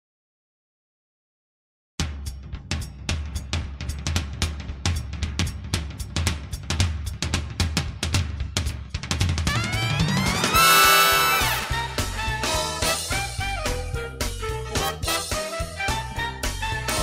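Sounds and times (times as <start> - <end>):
drum kit beat: 2.0 - 17.0.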